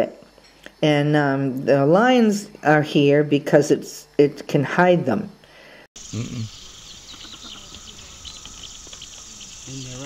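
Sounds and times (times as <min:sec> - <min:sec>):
faint outdoor hiss: 0:00.0 - 0:10.0
small birds chirping: 0:06.0 - 0:10.0.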